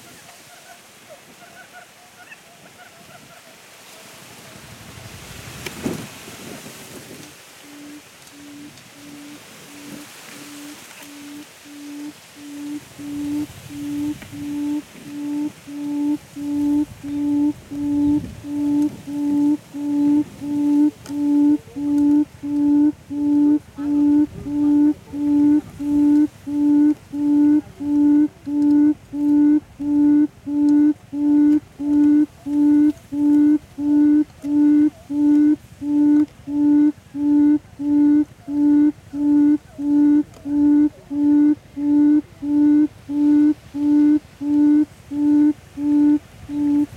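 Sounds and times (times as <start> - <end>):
bird's low hooting call: 7.6 - 46.9.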